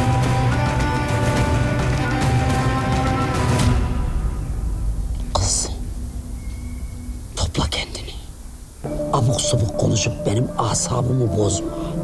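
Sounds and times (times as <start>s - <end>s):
low steady hum: 4.0s - 12.0s.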